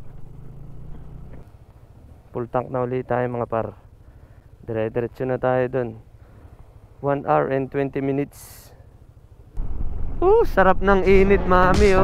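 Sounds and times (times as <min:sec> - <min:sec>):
scooter engine running slowly: 0:00.0 - 0:07.0.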